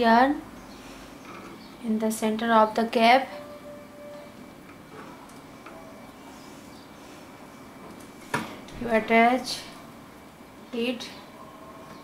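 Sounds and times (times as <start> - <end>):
faint steady high hum: 0.0 - 12.0.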